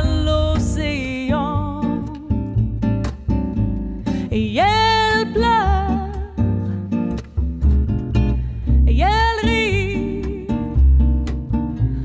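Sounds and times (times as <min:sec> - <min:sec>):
woman singing: 0:00.0 - 0:02.6, 0:04.2 - 0:06.6, 0:08.8 - 0:10.9
plucked acoustic guitar: 0:00.0 - 0:12.0.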